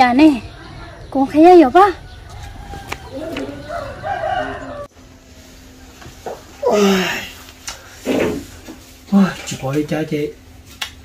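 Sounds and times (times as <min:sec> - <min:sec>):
rooster crowing: 0:02.1 - 0:04.9.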